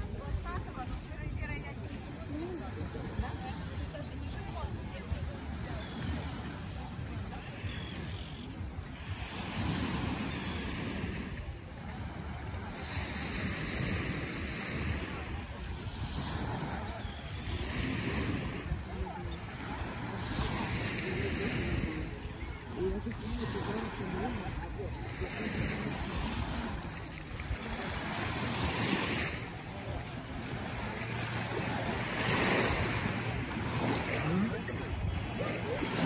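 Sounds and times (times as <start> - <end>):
small waves washing on sand: 0.0 - 36.0
wind rumbling on microphone: 0.0 - 36.0.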